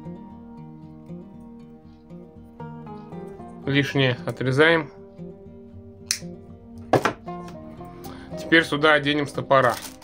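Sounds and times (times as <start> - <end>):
acoustic guitar music: 0.0 - 10.0
knock: 6.9 - 7.2.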